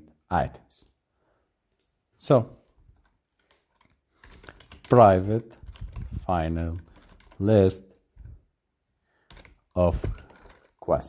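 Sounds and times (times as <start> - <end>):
computer keyboard typing: 2.9 - 8.3, 9.2 - 10.8.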